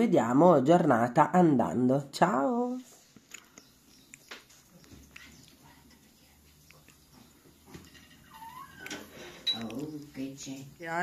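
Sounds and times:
quiet room hum: 0.0 - 11.0
cat meowing: 8.2 - 9.1.

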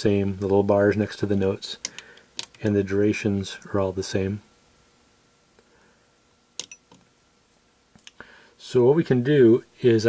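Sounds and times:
low room hiss: 0.0 - 10.0.

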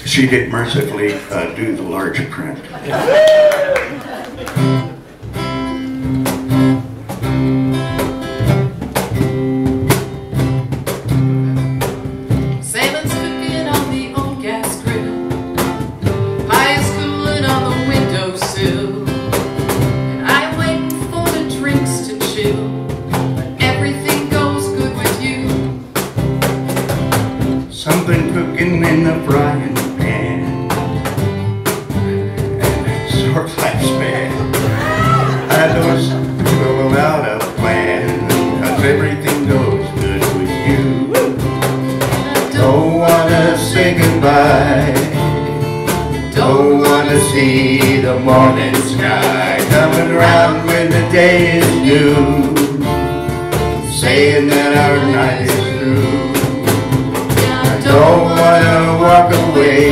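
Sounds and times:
upright bass: 0.0 - 59.9
cajon beat: 2.8 - 59.9
strummed acoustic guitar: 4.5 - 59.9.

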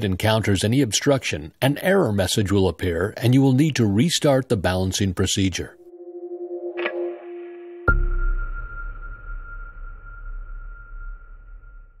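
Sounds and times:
steady high tone: 5.7 - 11.4.

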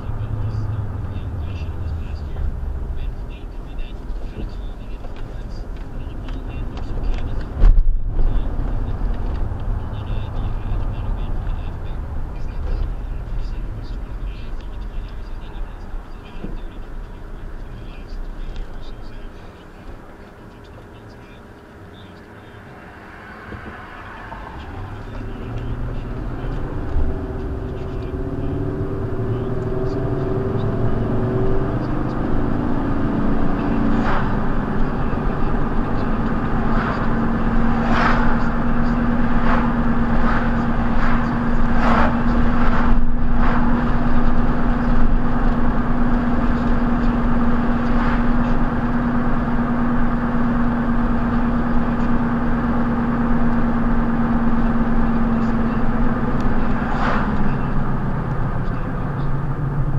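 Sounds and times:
car engine accelerating: 0.0 - 59.9
engine and road drone: 0.0 - 59.9.

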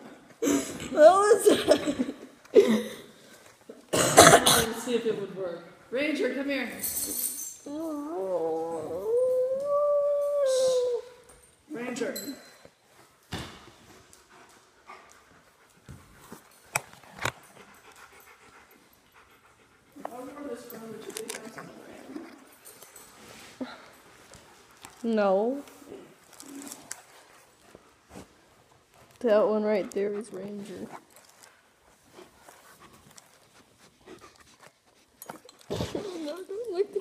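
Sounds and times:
dog panting: 13.8 - 25.0, 25.7 - 37.0.

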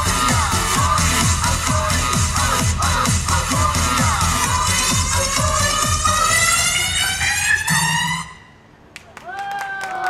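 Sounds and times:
electronic dance music: 0.0 - 8.4.

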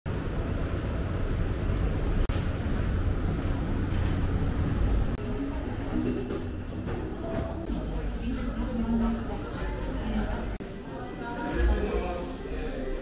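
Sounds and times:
traffic rumble on busy street: 0.1 - 7.7.

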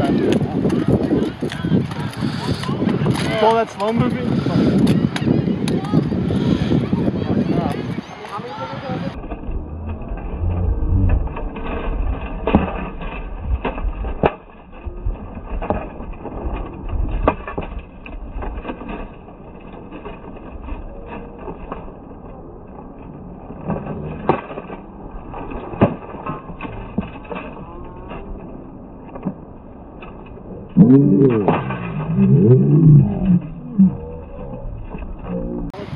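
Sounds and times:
low rumble: 9.0 - 24.3, 26.6 - 35.9.

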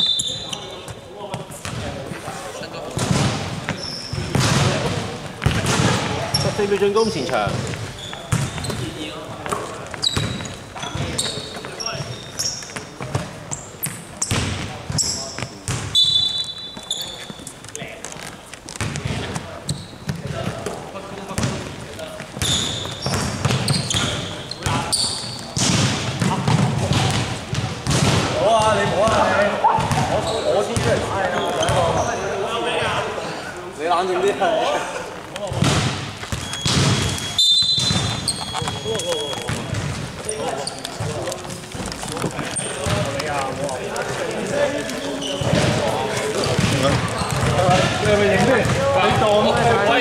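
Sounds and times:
sneaker squeaks: 0.0 - 2.0, 3.0 - 33.0, 35.4 - 50.0
basketball dribbling on hardwood: 35.5 - 43.4, 45.4 - 49.3.

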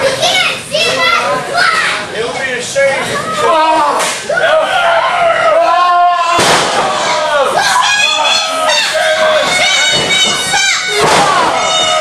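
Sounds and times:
children shouting: 3.2 - 12.0
sharp crack: 4.0 - 4.3, 6.4 - 7.1, 10.9 - 11.6
long high yell: 7.1 - 12.0.

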